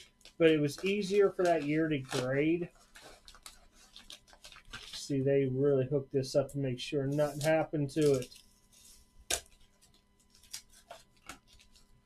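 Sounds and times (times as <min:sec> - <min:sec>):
padded mailer rustling: 0:00.0 - 0:05.1.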